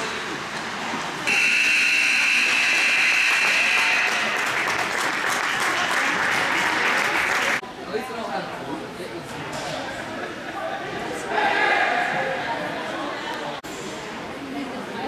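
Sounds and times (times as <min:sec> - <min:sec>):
scoreboard horn blaring: 0:01.3 - 0:04.5.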